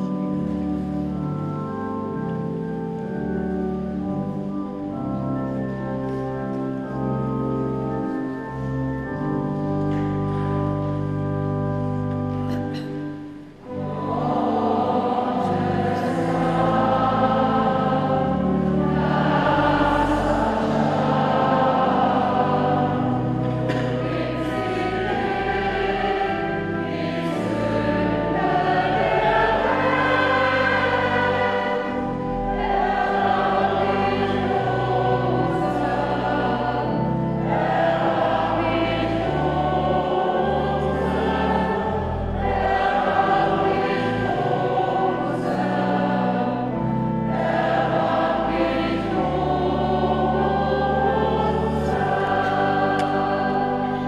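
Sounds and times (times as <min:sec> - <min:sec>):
church choir singing: 0:00.0 - 0:54.0
pipe organ bass notes: 0:00.0 - 0:54.0.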